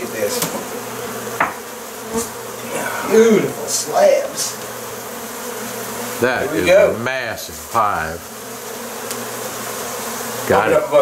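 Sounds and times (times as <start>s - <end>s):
bees buzzing: 0.0s - 11.0s.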